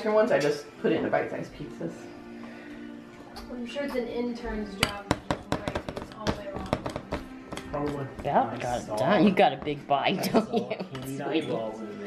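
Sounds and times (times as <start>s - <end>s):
spoon tapping in plastic bowl: 4.8s - 8.3s.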